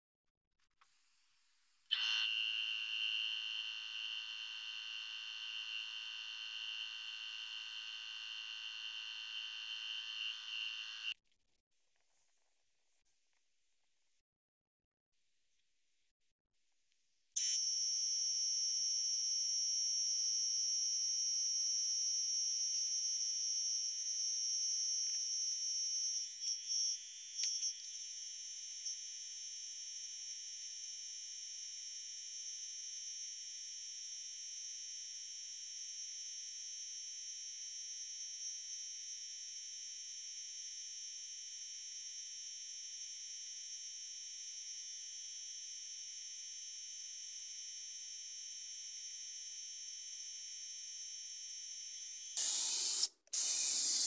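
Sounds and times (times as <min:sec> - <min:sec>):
paint spray gun hissing: 0:52.4 - 0:54.0.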